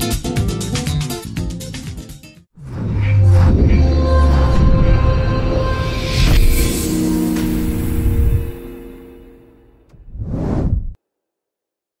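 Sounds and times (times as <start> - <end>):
whoosh sound effect: 9.9 - 11.0.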